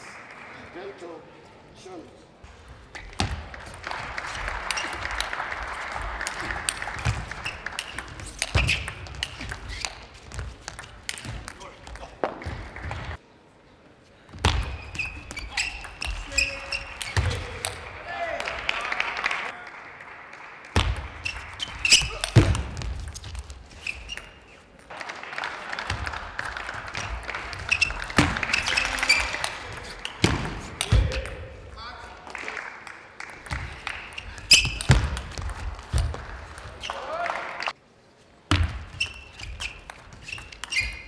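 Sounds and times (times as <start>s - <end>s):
crowd applause: 0.0s - 1.0s, 3.5s - 8.4s, 17.4s - 21.6s, 24.9s - 30.0s
voices in large hall: 0.0s - 22.9s, 23.7s - 38.5s.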